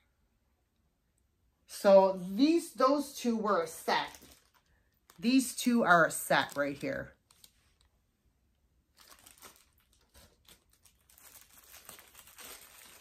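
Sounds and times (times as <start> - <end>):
plastic bags crinkling: 3.6 - 7.9, 8.9 - 13.0.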